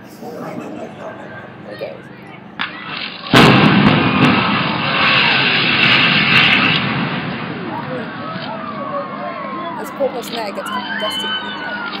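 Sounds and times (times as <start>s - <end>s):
loud explosive blast: 2.6s - 8.4s
rumble of building collapsing: 3.2s - 8.4s.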